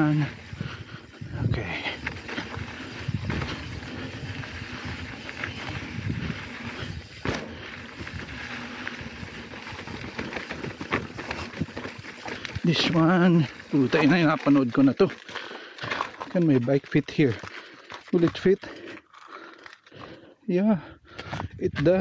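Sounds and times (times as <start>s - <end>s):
bike rattling over bumps: 0.0s - 20.3s
bike tyres on dirt and gravel: 0.0s - 22.0s.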